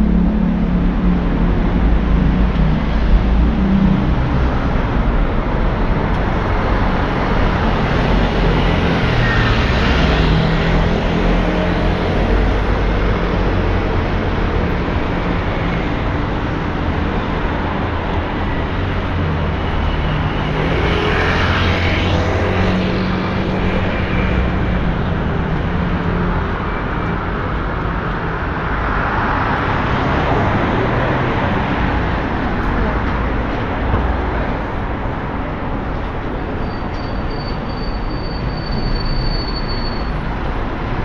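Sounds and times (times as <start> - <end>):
road traffic: 0.0 - 41.0
vehicles passing by: 0.0 - 41.0.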